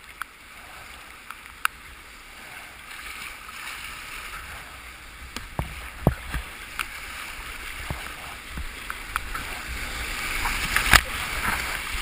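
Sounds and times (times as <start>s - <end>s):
paddle strokes splashing: 0.0s - 12.0s
whitewater rushing: 0.0s - 12.0s.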